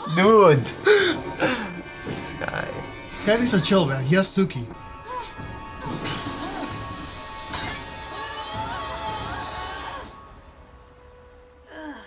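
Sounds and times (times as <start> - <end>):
dramatic orchestral score: 0.0 - 12.0
crash: 5.5 - 10.4
characters screaming: 8.0 - 10.2.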